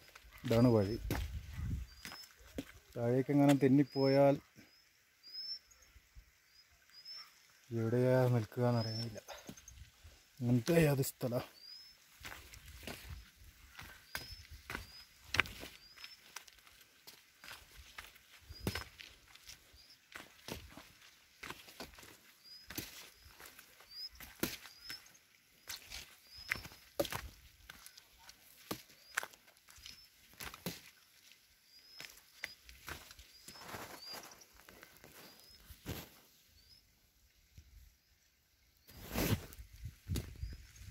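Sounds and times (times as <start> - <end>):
footsteps on rocky trail: 0.0 - 3.7, 8.8 - 36.4, 38.9 - 40.9.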